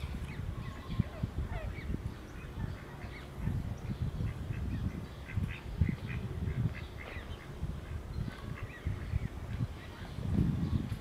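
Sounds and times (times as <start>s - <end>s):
chicks high begging calls: 0.1s - 10.8s.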